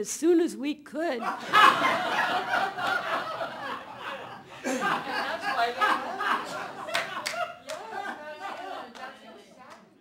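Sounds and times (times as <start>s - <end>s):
people talking: 0.0s - 1.3s, 4.7s - 9.9s
audience laughing: 1.2s - 9.6s
scattered hand claps: 6.9s - 7.9s, 8.5s - 9.9s.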